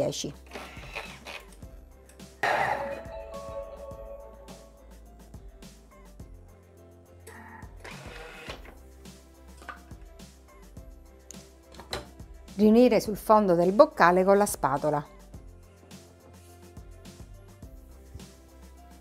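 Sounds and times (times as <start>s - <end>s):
background music held tones: 0.0s - 19.0s
blender blade whirring: 0.4s - 1.5s, 7.3s - 8.7s.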